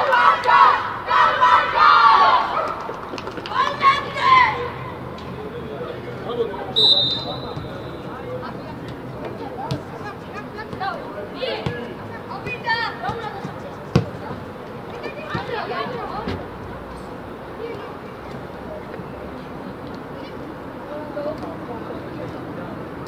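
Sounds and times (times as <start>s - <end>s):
young players shouting: 0.0s - 2.8s, 3.5s - 5.1s, 9.6s - 13.6s, 14.3s - 16.3s
referee's whistle: 6.7s - 8.2s
football being kicked: 13.9s - 14.2s.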